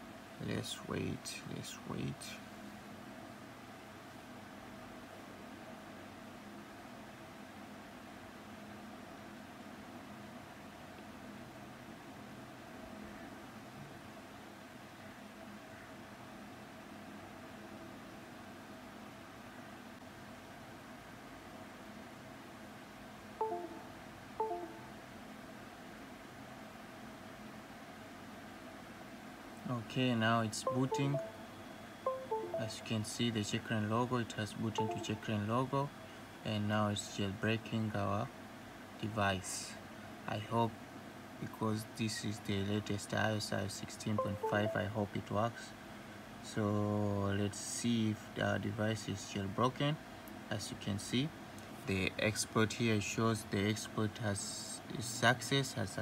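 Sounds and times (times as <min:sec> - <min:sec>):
low hiss: 0:00.0 - 0:17.5, 0:27.0 - 0:56.0
faint hum: 0:00.0 - 0:26.3, 0:27.0 - 0:56.0.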